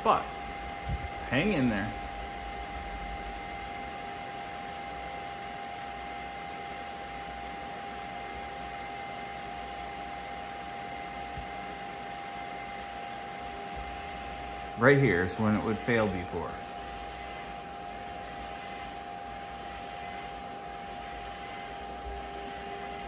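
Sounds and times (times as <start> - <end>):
cooling fans whining: 0.0 - 23.0.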